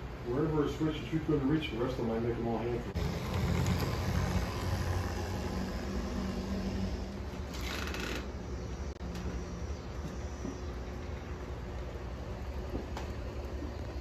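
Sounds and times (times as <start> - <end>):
faint motor hum: 0.0 - 14.0
model train rolling on track: 3.0 - 6.9.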